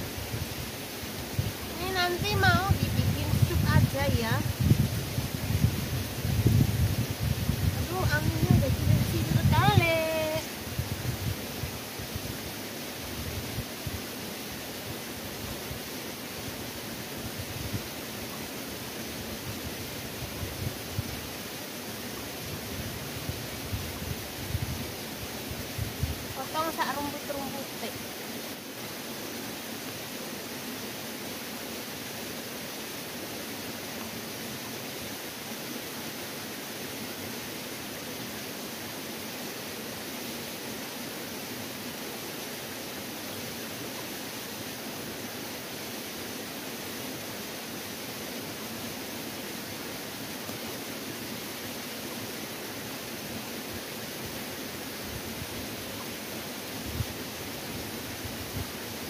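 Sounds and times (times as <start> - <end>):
steady rushing hiss: 0.0 - 59.0.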